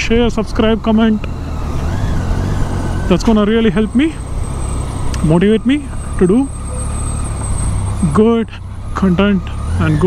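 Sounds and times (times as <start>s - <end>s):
motorcycle engine running low: 0.0s - 10.0s.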